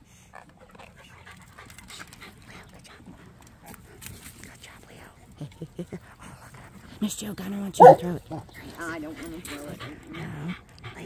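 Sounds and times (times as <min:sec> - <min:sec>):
dog panting: 0:00.2 - 0:11.0.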